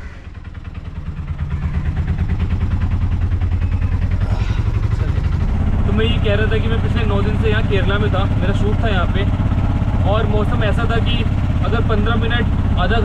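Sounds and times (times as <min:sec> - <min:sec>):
auto-rickshaw engine running: 0:00.0 - 0:13.0.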